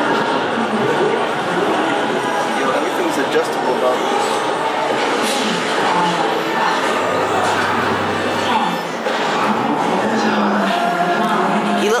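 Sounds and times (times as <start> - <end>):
room noise: 0.0 - 11.9
murmur of voices: 0.0 - 12.0.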